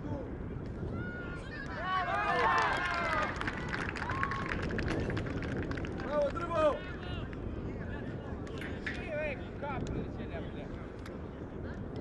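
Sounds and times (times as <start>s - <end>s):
scattered handclapping: 2.4s - 6.6s.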